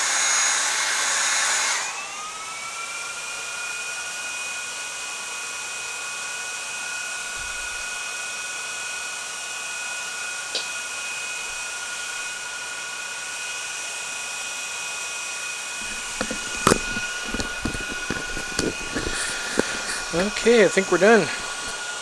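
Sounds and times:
small cooling fans whining: 0.0 - 14.6, 15.3 - 22.0
heat gun blowing: 7.1 - 8.2, 15.7 - 22.0.

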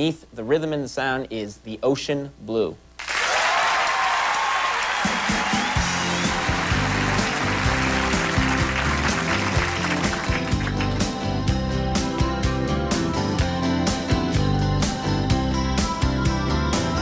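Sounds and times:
audience applause and cheering: 3.0 - 11.4
band playing: 5.0 - 17.0.

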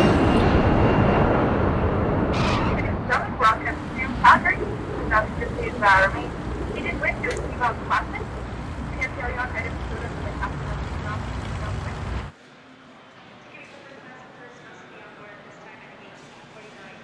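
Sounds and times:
low rumble of vehicles: 0.0 - 12.4
indistinct voices: 2.3 - 12.3.

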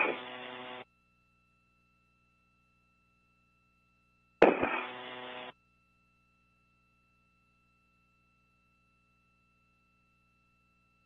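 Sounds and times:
muffled radio noise: 0.0 - 0.8, 4.4 - 5.5.

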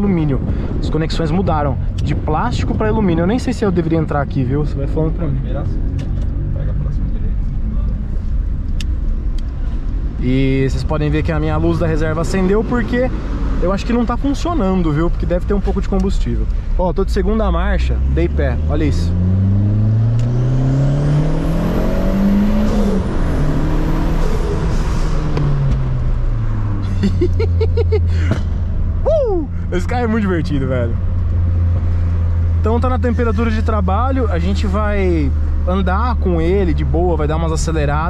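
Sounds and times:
car engine droning: 0.0 - 38.0.

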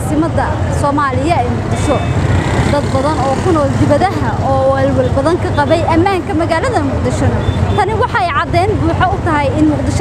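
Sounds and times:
people's voices: 0.0 - 10.0.

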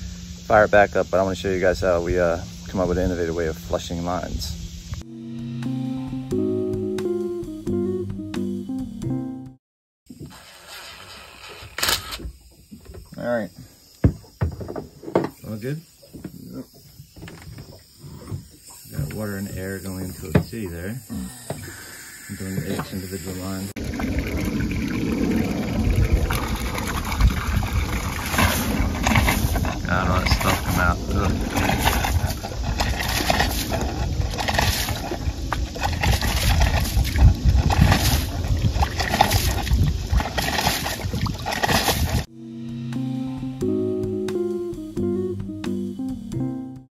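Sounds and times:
guitar music: 5.0 - 9.6, 42.3 - 46.9
water spurting and splashing: 21.7 - 42.3
heavy low rumble: 23.6 - 40.4.

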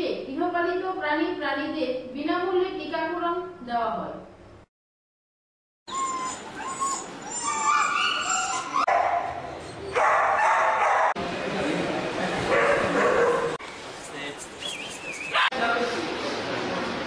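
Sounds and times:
dogs whimpering and yelping: 5.9 - 10.7.

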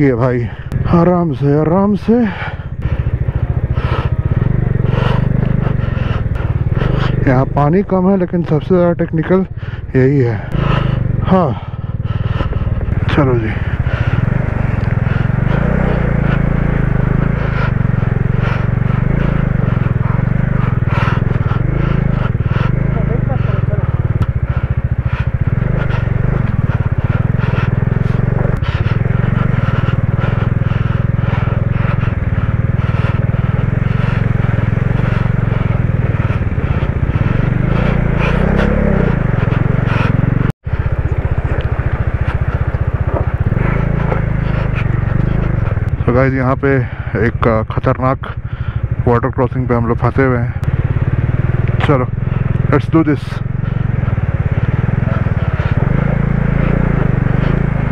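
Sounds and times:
motorcycle engine rumbling: 0.0 - 57.9.

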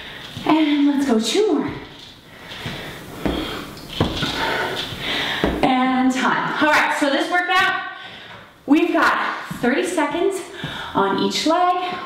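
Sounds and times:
person breathing: 2.2 - 5.6, 7.9 - 8.6, 10.4 - 11.0
sneakers thudding on hardwood floor: 2.7 - 4.6, 5.3 - 5.7.

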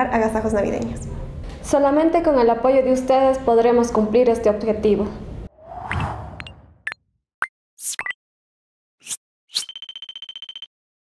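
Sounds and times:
rapid high beeps: 9.5 - 10.7.

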